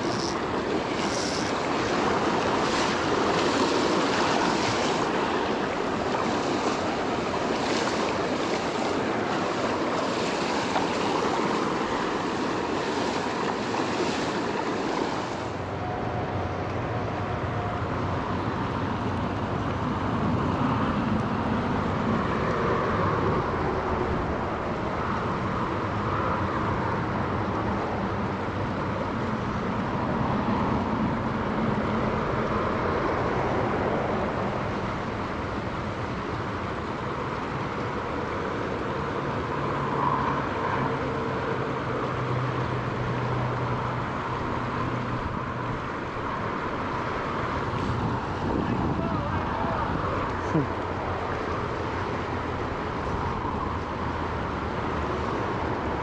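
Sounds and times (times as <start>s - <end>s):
river rapids rushing: 0.0s - 15.8s
highway traffic on bridge: 0.0s - 56.0s.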